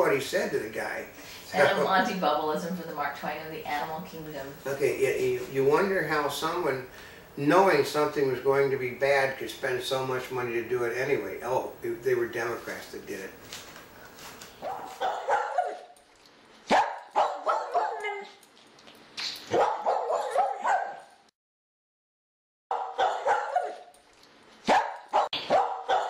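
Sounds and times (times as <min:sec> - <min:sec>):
small dog barking and yipping: 0:14.6 - 0:16.0, 0:16.7 - 0:18.4, 0:19.4 - 0:21.1, 0:22.7 - 0:23.9, 0:24.6 - 0:26.0.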